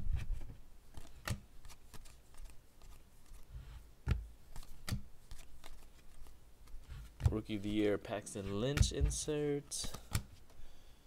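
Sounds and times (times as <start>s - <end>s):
cards flipping and snapping: 0.9s - 7.3s, 9.8s - 10.5s.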